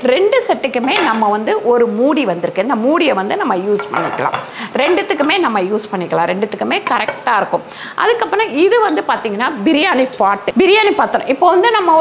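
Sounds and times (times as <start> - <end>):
woman talking: 0.0 - 12.0
cookware and glass lid clinking: 3.8 - 4.5, 6.8 - 7.4.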